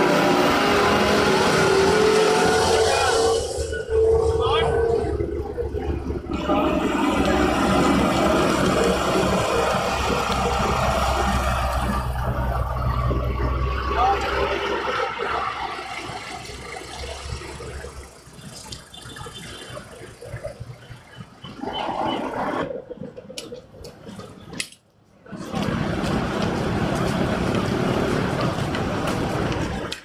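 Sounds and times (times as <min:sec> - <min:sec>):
diesel construction machines rumbling: 0:00.0 - 0:30.0
people talking: 0:00.6 - 0:12.6, 0:13.7 - 0:21.0.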